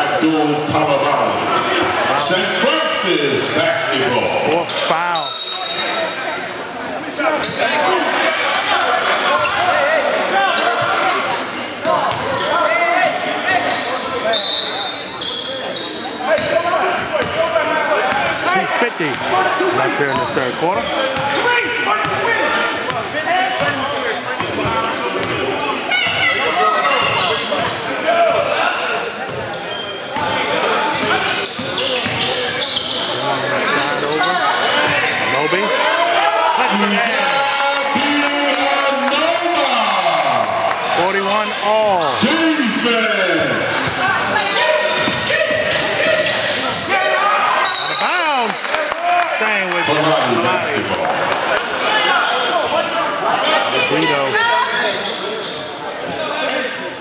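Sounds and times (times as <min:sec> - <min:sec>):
voices of players and spectators: 0:00.0 - 0:57.0
sneakers squeaking on court: 0:07.4 - 0:09.7, 0:10.5 - 0:12.8, 0:13.5 - 0:17.4, 0:20.1 - 0:35.4, 0:43.6 - 0:48.1, 0:53.8 - 0:57.0.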